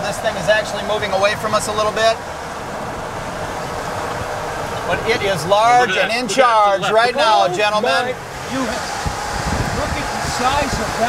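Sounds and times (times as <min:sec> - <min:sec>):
wind buffeting microphone: 0:08.2 - 0:11.0.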